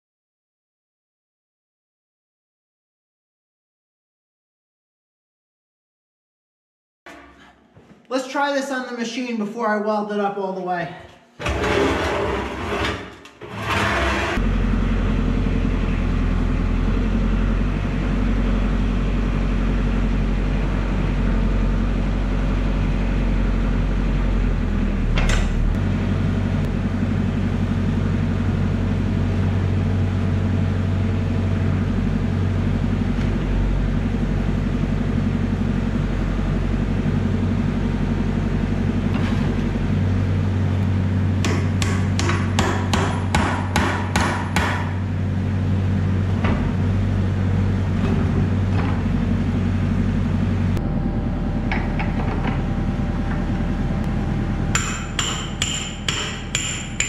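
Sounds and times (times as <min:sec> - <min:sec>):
metal clank: 0:07.1 - 0:07.6
excavator diesel engine running: 0:13.9 - 0:43.3, 0:44.9 - 0:57.0.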